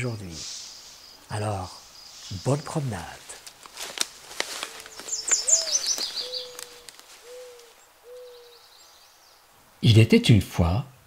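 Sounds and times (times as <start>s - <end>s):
owl hooting: 4.6s - 8.7s
small bird trilling: 4.9s - 8.7s.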